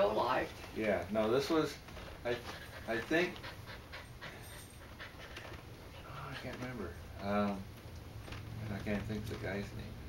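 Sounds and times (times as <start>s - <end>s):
dog panting: 2.2s - 7.0s.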